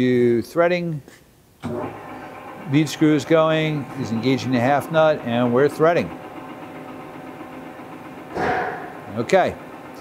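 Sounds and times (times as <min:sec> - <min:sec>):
lathe gear hum: 0:01.6 - 0:10.0
lathe clatter: 0:01.7 - 0:10.0.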